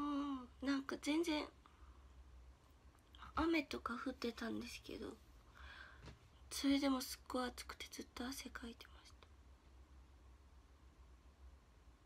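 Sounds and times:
person whispering: 0:07.6 - 0:09.3.

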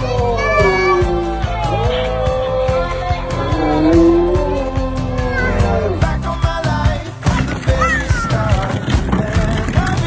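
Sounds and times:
dog howling: 0:00.0 - 0:06.2
music with steady beat: 0:00.0 - 0:10.0.

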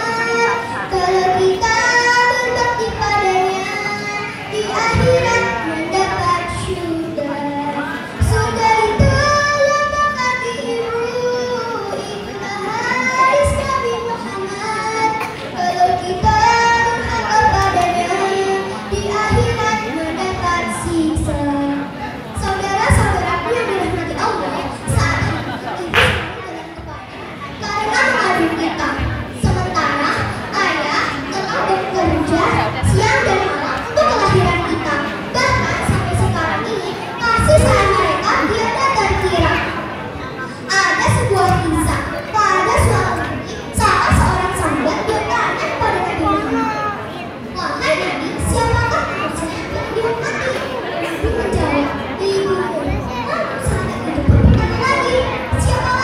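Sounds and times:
girl singing into a microphone: 0:00.0 - 0:39.8, 0:40.7 - 0:56.0.

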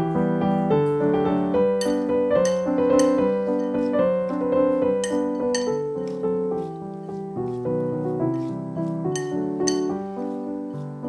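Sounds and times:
gentle piano music: 0:00.0 - 0:11.0
chopsticks clinking on glass bowl: 0:01.8 - 0:04.0, 0:05.0 - 0:06.2, 0:09.1 - 0:10.0.

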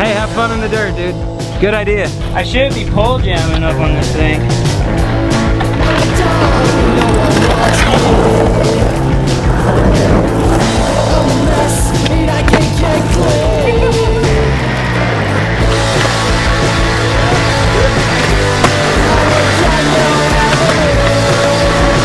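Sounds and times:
background music: 0:00.0 - 0:22.0
skateboard wheels rolling on concrete: 0:03.4 - 0:22.0
skateboard clacks and pops: 0:05.6 - 0:08.9, 0:18.1 - 0:22.0.

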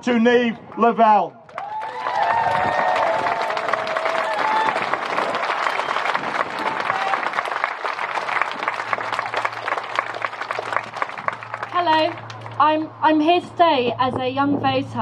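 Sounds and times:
crowd applauding: 0:01.5 - 0:12.6.

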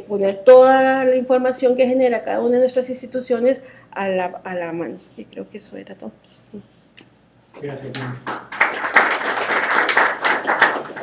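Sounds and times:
audience applauding: 0:07.9 - 0:11.0.

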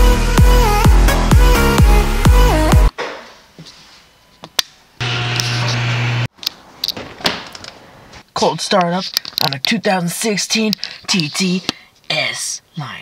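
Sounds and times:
electronic dance music: 0:00.0 - 0:02.9
loud steady low hum: 0:05.0 - 0:06.3.

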